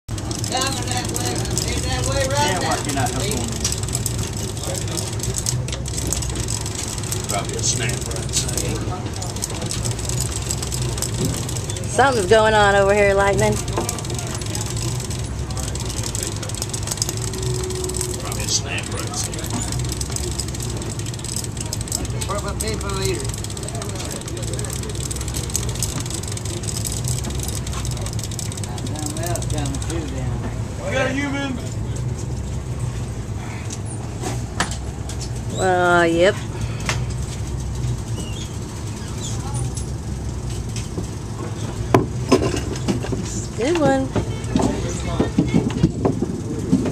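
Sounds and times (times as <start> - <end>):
boat engine droning: 0.1 - 46.9.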